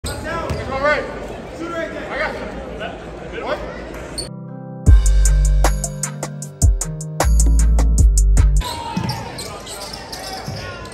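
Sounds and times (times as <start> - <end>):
voices echoing in gym: 0.0 - 4.3, 8.6 - 10.9.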